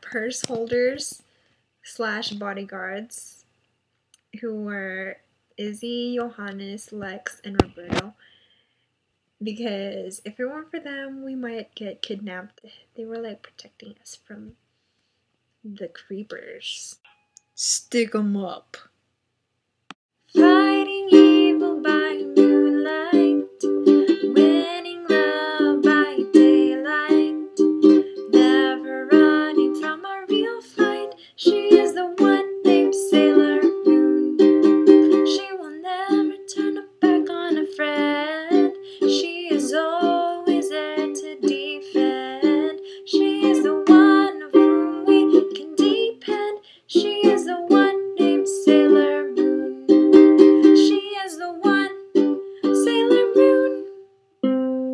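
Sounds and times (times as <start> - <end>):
woman singing: 20.3 - 54.0
ukulele strumming chords: 20.3 - 54.9.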